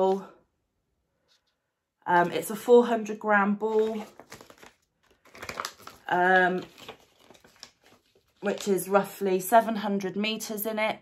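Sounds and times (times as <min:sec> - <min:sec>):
paper crinkling: 0:03.6 - 0:08.9.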